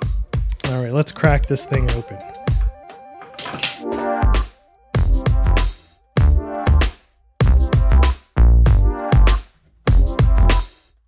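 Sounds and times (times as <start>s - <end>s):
electronic music with synth line: 1.2s - 9.4s.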